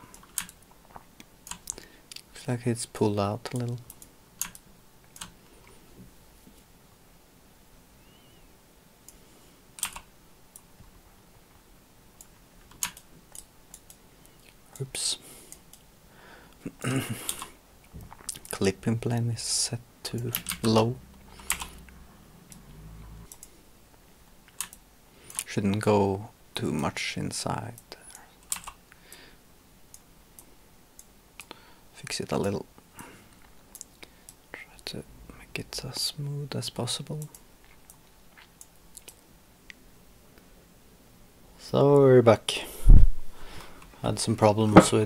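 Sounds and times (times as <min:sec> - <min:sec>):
faint room hiss: 0:00.0 - 0:45.0
computer keyboard and mouse clicks: 0:00.1 - 0:00.6, 0:01.4 - 0:01.8, 0:03.5 - 0:05.4, 0:09.8 - 0:10.7, 0:12.6 - 0:14.0, 0:20.2 - 0:20.8, 0:21.4 - 0:21.8, 0:23.3 - 0:23.5, 0:24.5 - 0:25.5, 0:28.4 - 0:28.8.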